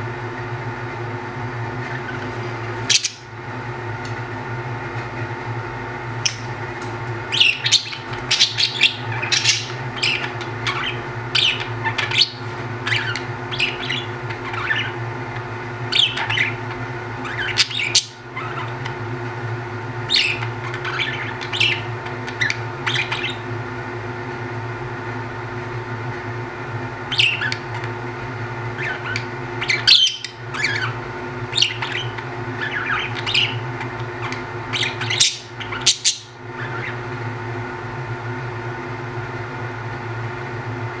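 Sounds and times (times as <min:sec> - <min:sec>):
steady low hum: 0:00.0 - 0:41.0
budgerigars chirping and squawking: 0:01.9 - 0:03.3, 0:07.3 - 0:15.0, 0:15.9 - 0:19.0, 0:20.0 - 0:23.5, 0:27.1 - 0:27.9, 0:28.8 - 0:37.1.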